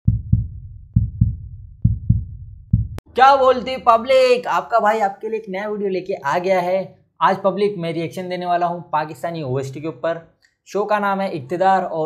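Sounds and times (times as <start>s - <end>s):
deep booming double thumps: 0.1s - 3.2s.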